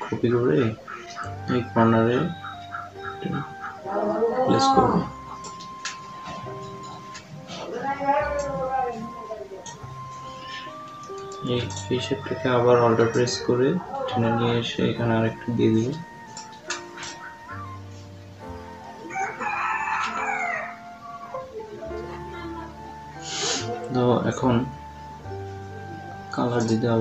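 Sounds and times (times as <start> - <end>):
cat meowing: 10.2 - 10.9
rooster crowing: 12.0 - 14.5, 18.8 - 21.6.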